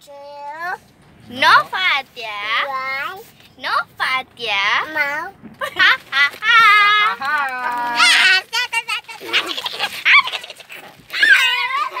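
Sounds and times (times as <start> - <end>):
child squealing: 9.2 - 12.0.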